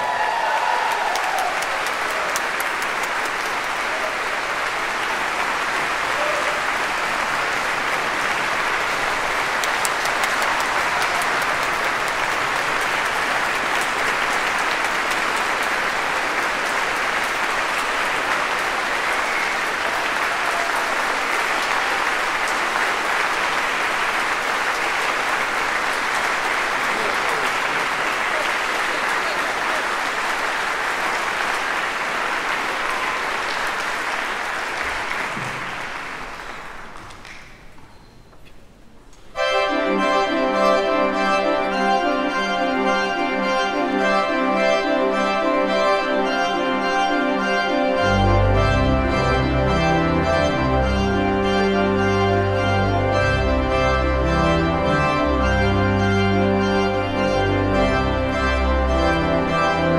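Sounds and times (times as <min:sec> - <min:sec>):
audience applauding: 0:00.0 - 0:37.8, 0:39.7 - 0:59.9.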